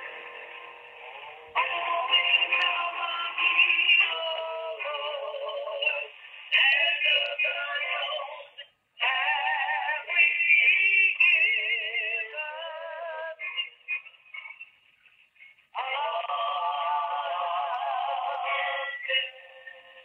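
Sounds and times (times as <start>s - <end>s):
music with singing over speakerphone: 0.0s - 20.0s.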